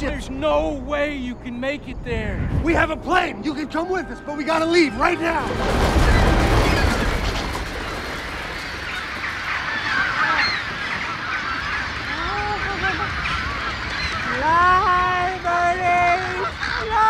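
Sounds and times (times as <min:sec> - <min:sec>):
honking bird calls: 0:03.4 - 0:17.0
flock of birds squawking: 0:05.2 - 0:17.0.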